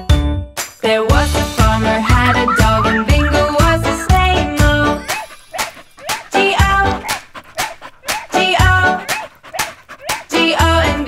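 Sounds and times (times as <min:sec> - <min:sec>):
children's song music: 0:00.0 - 0:11.0
puppy barking and yipping: 0:02.2 - 0:10.7.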